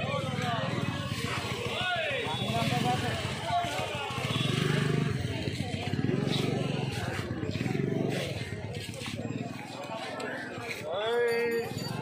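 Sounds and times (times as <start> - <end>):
vehicle engine running: 0.0 - 10.5
people talking: 0.0 - 12.0.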